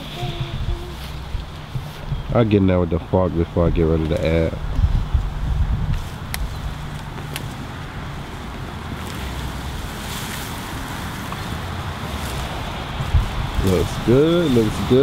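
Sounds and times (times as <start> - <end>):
steady rushing hiss: 0.0 - 15.0
wind rumbling on microphone: 0.0 - 15.0.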